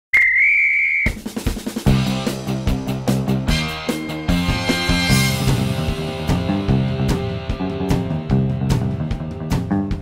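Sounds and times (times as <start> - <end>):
whistle blast: 0.1 - 1.2
drum fill: 1.0 - 3.4
rock music: 1.2 - 10.0.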